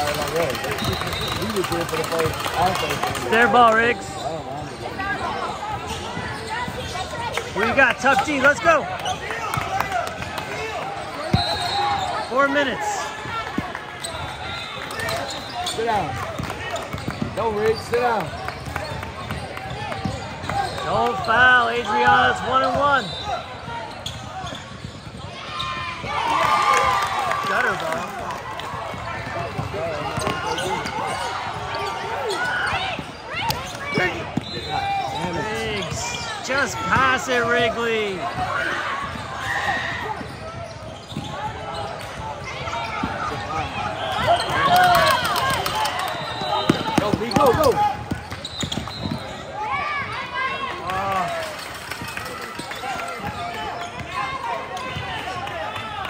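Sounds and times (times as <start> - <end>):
people talking and calling out: 0.0 - 56.0.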